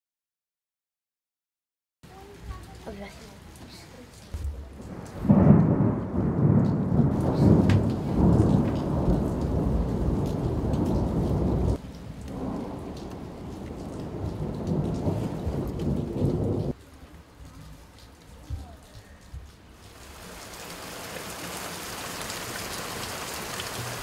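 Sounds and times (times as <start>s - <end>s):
thunder rumbling: 4.4s - 16.8s.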